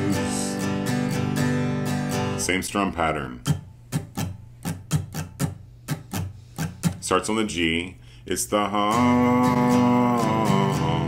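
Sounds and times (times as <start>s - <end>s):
acoustic guitar strumming: 0.0s - 7.9s, 8.6s - 11.0s.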